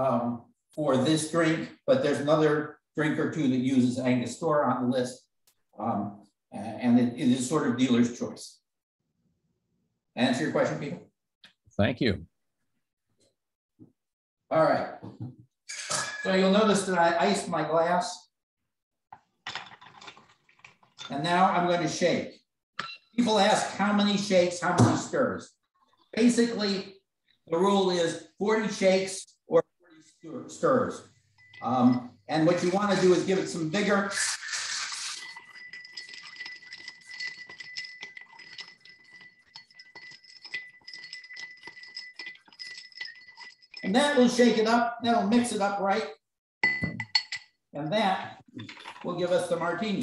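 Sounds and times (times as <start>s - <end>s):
ice and glassware clinking: 15.7s - 16.5s, 19.5s - 21.4s, 31.4s - 44.6s, 46.6s - 47.5s, 48.6s - 49.2s.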